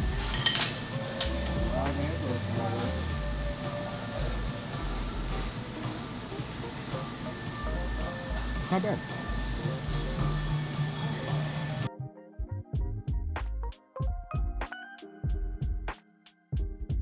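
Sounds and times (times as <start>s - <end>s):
restaurant background music: 0.0s - 17.0s
cutlery clinking against plate: 0.3s - 1.6s.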